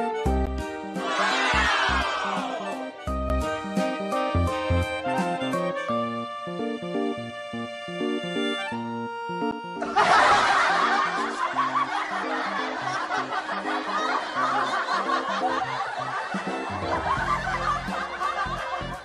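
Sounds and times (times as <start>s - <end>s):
background music: 0.0s - 19.0s
crowd laughing: 1.0s - 3.0s, 9.8s - 19.0s.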